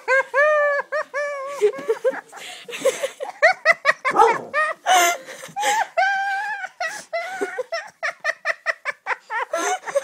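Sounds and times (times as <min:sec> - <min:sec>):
girl laughing: 0:00.0 - 0:10.0.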